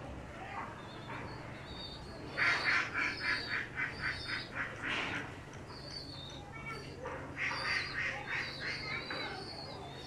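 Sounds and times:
bird raspy calls: 0.8s - 10.0s.

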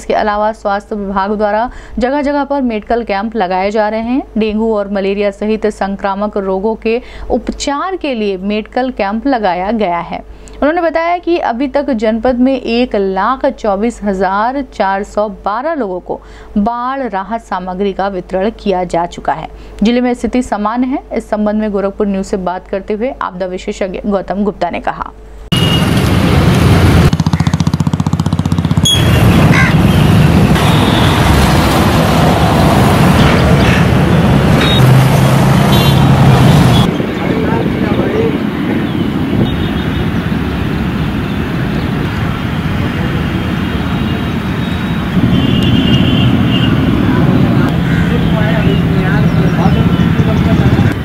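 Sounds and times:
road traffic: 0.0s - 15.2s, 24.9s - 51.0s.

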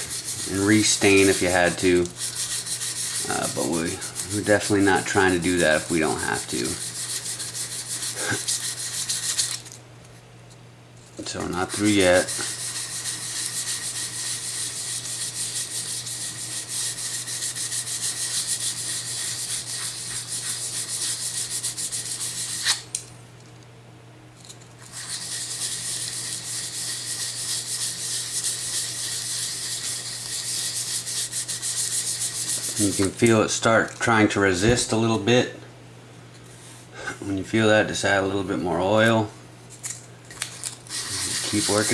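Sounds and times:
sandpaper rubbing on wood: 0.0s - 9.6s, 11.4s - 22.8s, 24.9s - 33.3s, 40.9s - 41.9s.

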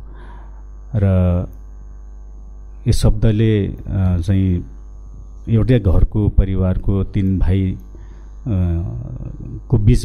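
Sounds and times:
electrical mains hum: 0.0s - 10.0s
man speaking into a microphone: 2.8s - 4.8s, 5.4s - 7.8s, 8.5s - 10.0s.

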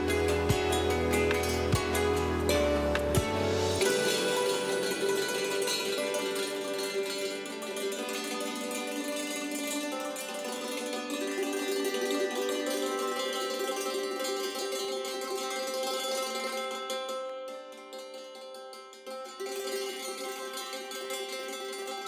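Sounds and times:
looped electronic music: 0.0s - 15.6s
hammered dulcimer: 0.0s - 22.0s.

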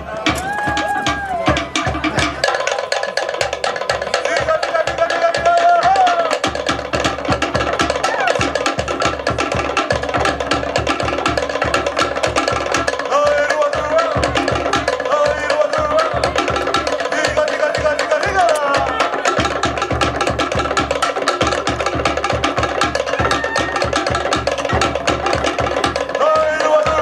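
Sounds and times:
rapid wooden drumming: 0.0s - 27.0s.

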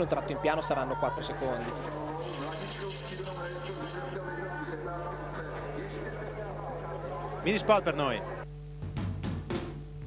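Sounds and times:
tv sports broadcast voices: 0.0s - 8.4s
low electrical hum: 0.0s - 10.0s.

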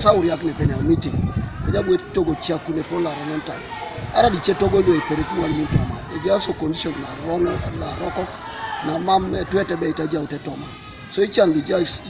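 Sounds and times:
man talking: 4.2s - 8.3s, 8.9s - 10.6s.

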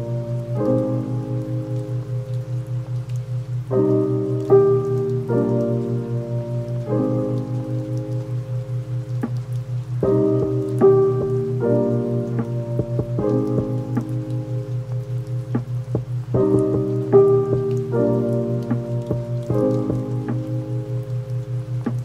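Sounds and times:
music of held chords: 0.0s - 22.0s
steady rain: 0.0s - 22.0s.

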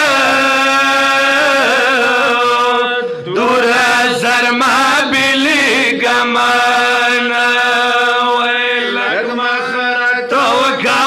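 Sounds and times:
men chanting into a microphone: 0.0s - 11.0s.

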